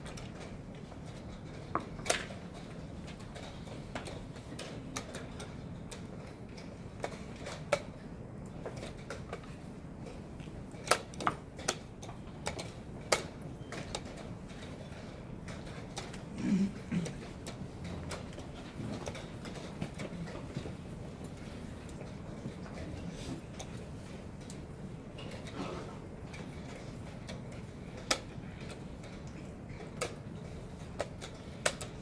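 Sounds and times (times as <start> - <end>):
low hall hum: 0.0 - 32.0.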